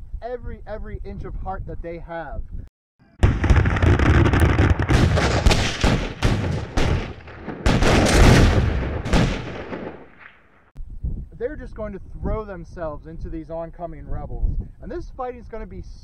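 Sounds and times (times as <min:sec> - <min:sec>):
booming explosions: 0:03.2 - 0:10.6
dense gunfire: 0:03.2 - 0:10.7.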